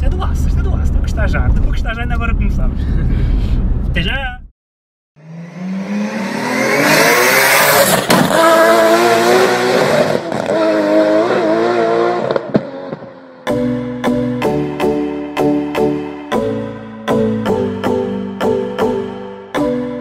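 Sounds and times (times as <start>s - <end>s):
car engine revving: 5.2s - 13.5s
music: 13.5s - 20.0s.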